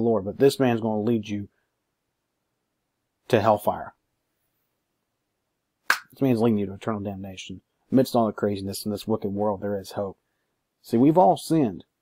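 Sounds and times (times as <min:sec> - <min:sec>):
man speaking: 0:00.0 - 0:01.5, 0:03.2 - 0:04.0, 0:06.1 - 0:10.2, 0:10.8 - 0:12.0.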